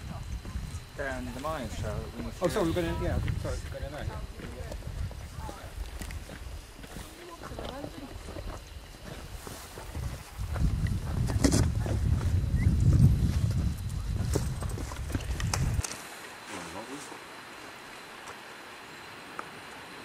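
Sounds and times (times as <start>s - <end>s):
wind buffeting microphone: 0.0s - 15.9s.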